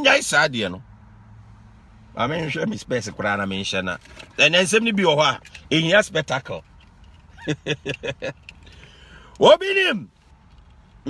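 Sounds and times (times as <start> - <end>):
man chuckling: 7.3 - 8.4.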